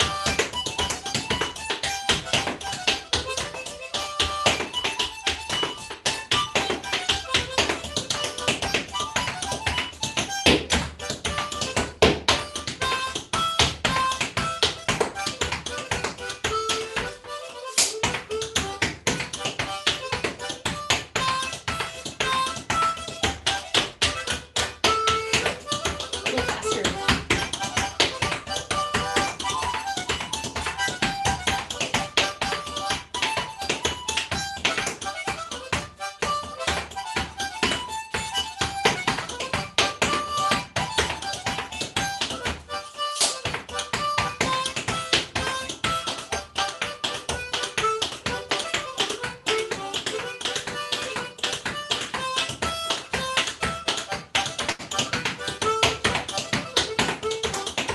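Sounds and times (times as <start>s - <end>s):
clogging foot taps and stamps: 0.0s - 57.9s
harmonica playing tune: 0.0s - 57.9s.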